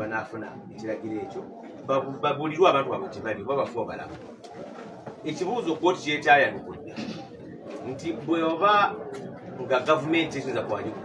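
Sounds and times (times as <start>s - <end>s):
man speaking: 0.0s - 4.2s, 5.3s - 7.2s.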